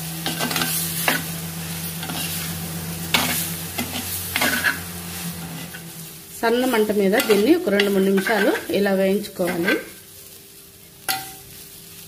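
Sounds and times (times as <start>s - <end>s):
potatoes sizzling in a pot: 0.0s - 12.0s
spatula stirring: 1.9s - 10.1s.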